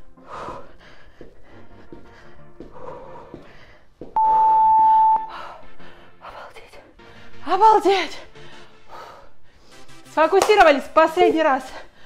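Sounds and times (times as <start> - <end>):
workout background music: 0.0 - 12.0
electronic timer beep: 4.2 - 5.3.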